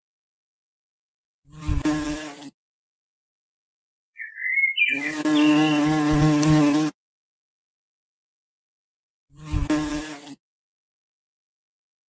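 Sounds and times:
flying insect buzzing: 0:01.5 - 0:02.6, 0:04.2 - 0:07.0, 0:09.3 - 0:10.4.

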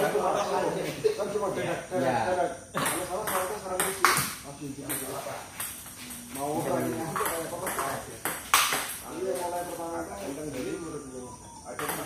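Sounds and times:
ball cracking on bat: 0:07.1 - 0:09.0.

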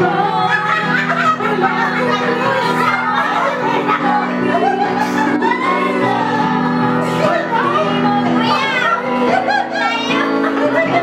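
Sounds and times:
backing music with low notes: 0:00.0 - 0:11.0
group of people singing: 0:00.0 - 0:11.0.

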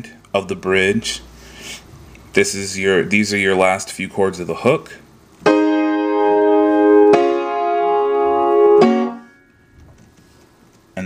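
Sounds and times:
keyboard chords: 0:05.4 - 0:09.5.

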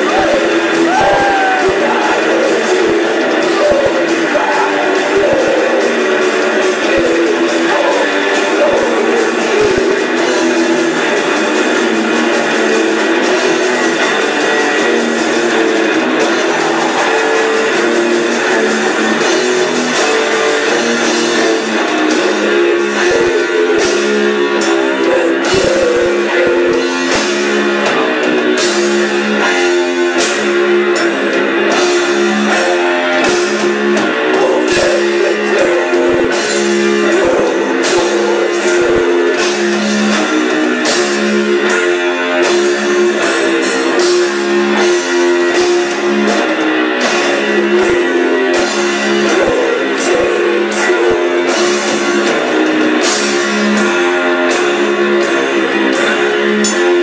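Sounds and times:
death metal band playing live: 0:00.0 - 0:57.0.

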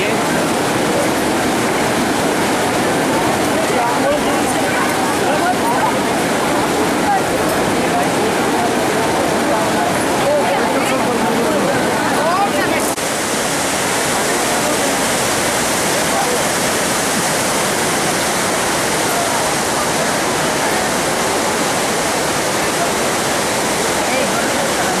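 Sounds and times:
river rushing over boulders: 0:00.0 - 0:25.0.

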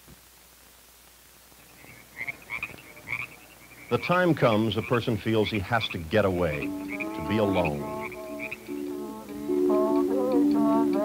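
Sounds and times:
frogs croaking: 0:01.6 - 0:10.8.

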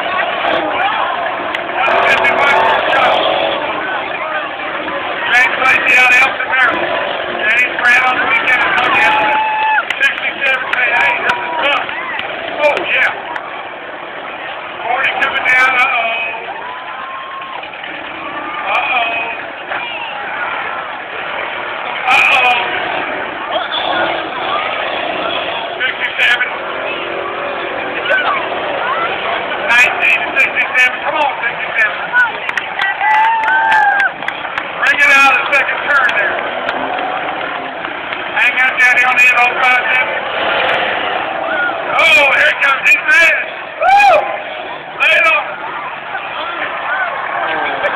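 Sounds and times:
cars running and colliding: 0:00.0 - 0:47.9
crowd chatter: 0:00.0 - 0:47.9.

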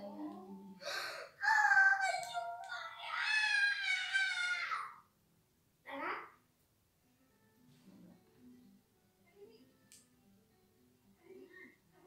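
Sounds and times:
high-pitched wailing cry: 0:02.7 - 0:05.0.

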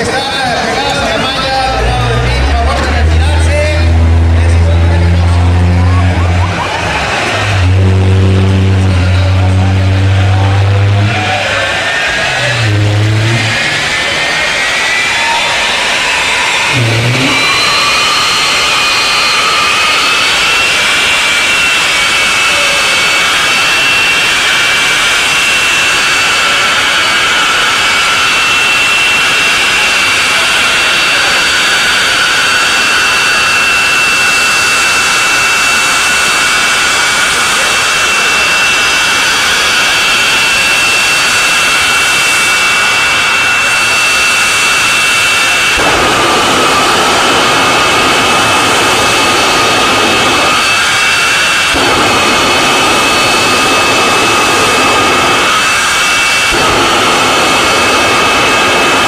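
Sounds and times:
jet engine whine: 0:00.0 - 0:59.0
deep rumble: 0:00.8 - 0:43.6, 0:44.6 - 0:59.0.

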